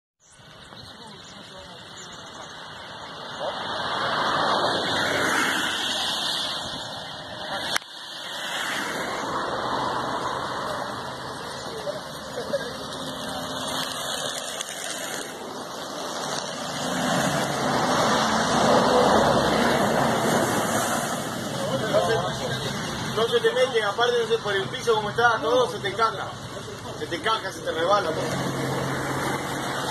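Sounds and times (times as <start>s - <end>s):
road vehicle passing: 0.4s - 29.9s.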